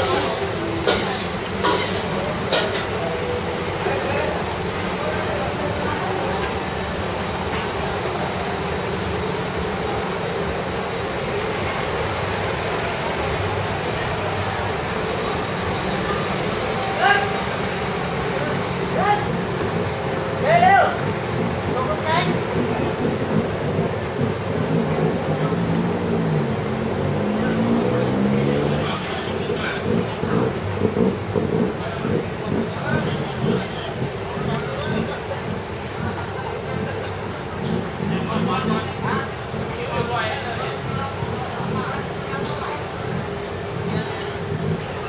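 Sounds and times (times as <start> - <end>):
people talking: 0.0 - 45.0
traffic: 0.0 - 45.0.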